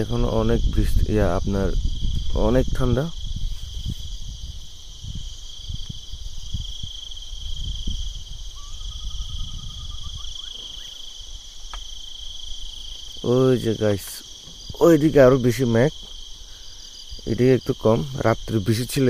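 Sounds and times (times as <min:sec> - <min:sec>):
low rumble on microphone: 0:00.0 - 0:16.4
insects chorus: 0:00.0 - 0:19.0.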